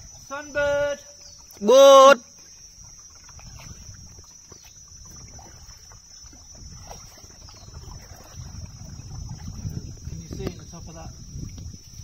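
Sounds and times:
paddle dipping in water: 0:00.0 - 0:12.0
water trickling off paddle: 0:00.0 - 0:12.0.

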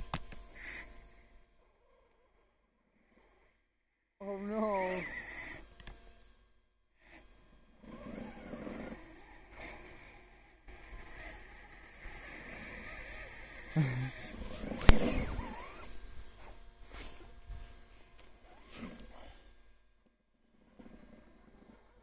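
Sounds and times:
small electric motor and drivetrain: 0:00.0 - 0:22.0
tyres churning snow: 0:07.9 - 0:19.2.

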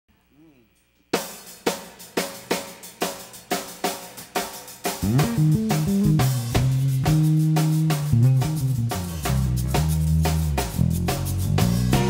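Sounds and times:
drum kit playing: 0:01.1 - 0:12.0
snare and cymbal hits: 0:01.1 - 0:12.0.

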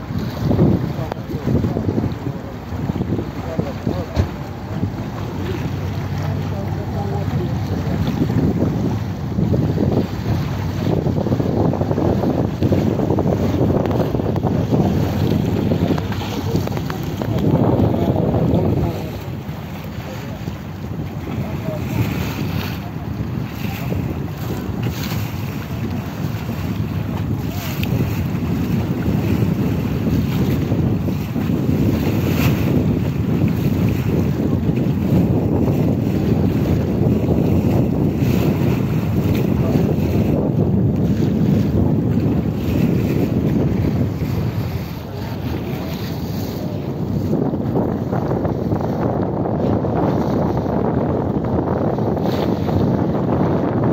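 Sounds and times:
water rushing along hull: 0:00.0 - 0:53.9
wind buffeting microphone: 0:00.0 - 0:53.9.

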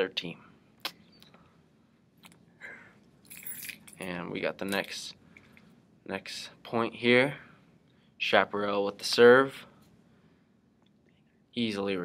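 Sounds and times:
mouth click: 0:00.8 - 0:01.4
person speaking: 0:04.0 - 0:05.2.

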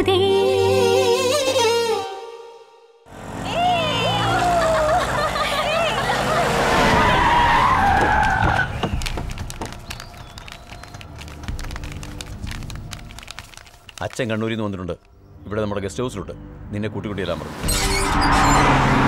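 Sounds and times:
tyres squealing: 0:06.5 - 0:14.7
knocks and clicks: 0:07.9 - 0:14.2.

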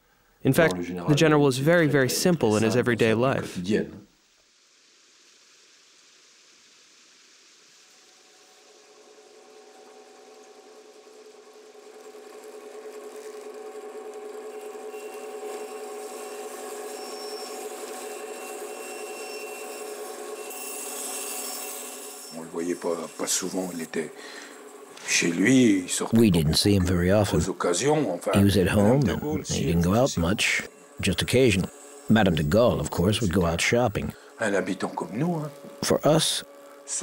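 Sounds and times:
electric band saw humming: 0:08.1 - 0:37.0
saw blade cutting wood: 0:12.9 - 0:25.5, 0:28.8 - 0:36.4.

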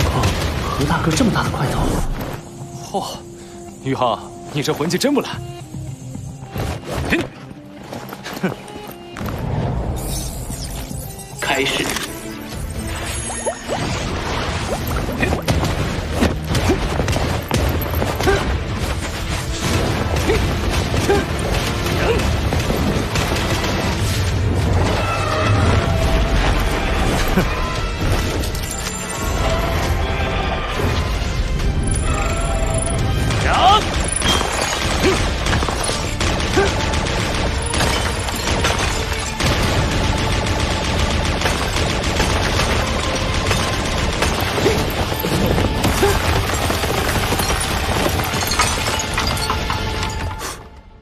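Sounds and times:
film score music: 0:00.0 - 0:51.0.

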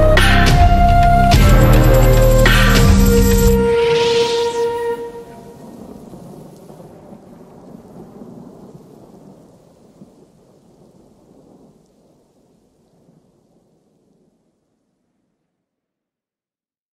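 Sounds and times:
rain hiss: 0:00.0 - 0:14.3.

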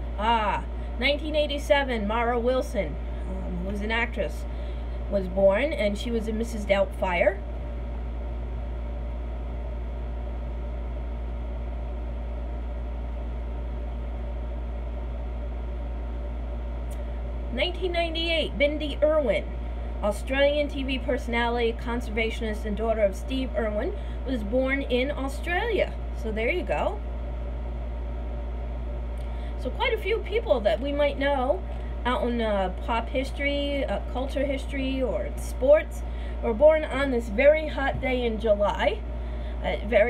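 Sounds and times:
running machine humming: 0:00.0 - 0:40.0.

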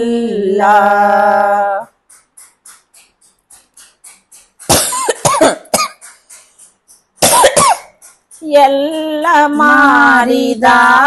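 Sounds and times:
elderly woman coughing: 0:04.7 - 0:06.2, 0:07.2 - 0:08.0.

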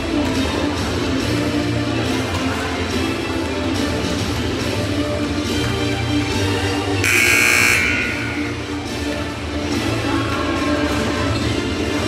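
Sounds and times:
music playing in a gym: 0:00.0 - 0:12.0
scoreboard buzzer: 0:07.0 - 0:08.6.

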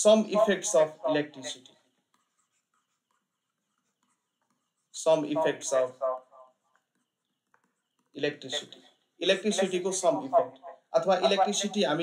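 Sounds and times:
man speaking: 0:00.0 - 0:01.8, 0:04.9 - 0:06.5, 0:08.1 - 0:12.0
stylus scratching on tablet: 0:00.1 - 0:12.0.

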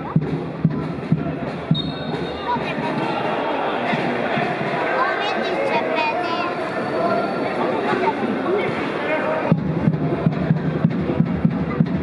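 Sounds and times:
drum beating: 0:00.0 - 0:05.2, 0:09.4 - 0:12.0
crowd voices and chatter: 0:00.0 - 0:12.0
high steady whistle tone: 0:01.7 - 0:02.5.

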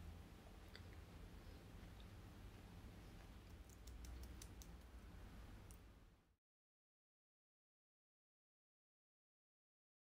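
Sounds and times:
faint sharp clicks: 0:03.2 - 0:05.8.

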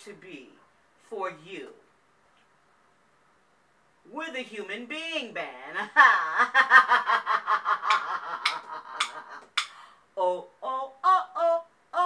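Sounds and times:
woman laughing: 0:05.8 - 0:09.6.

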